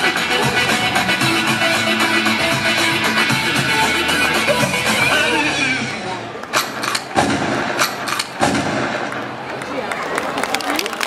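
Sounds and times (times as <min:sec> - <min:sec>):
crowd voices: 0:00.0 - 0:11.0
audience clapping: 0:09.0 - 0:11.0.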